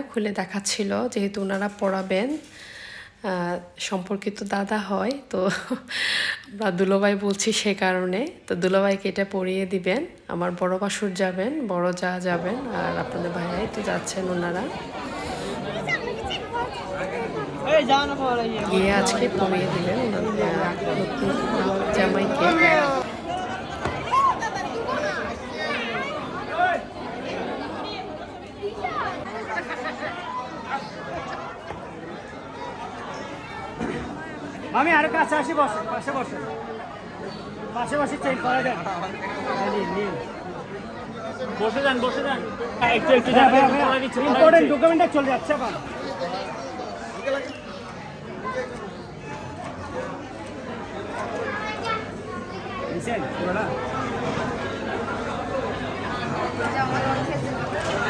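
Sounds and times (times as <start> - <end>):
overlapping chatter: 0.0 - 58.0.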